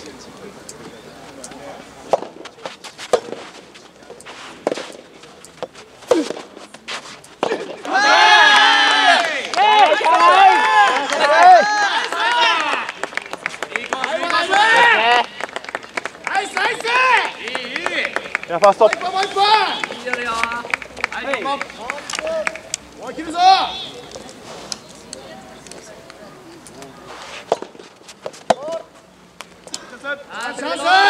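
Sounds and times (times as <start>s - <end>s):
rackets hitting tennis ball: 1.4s - 8.2s, 26.7s - 30.0s
players shouting and cheering: 7.4s - 15.4s, 16.3s - 24.1s, 29.9s - 31.0s.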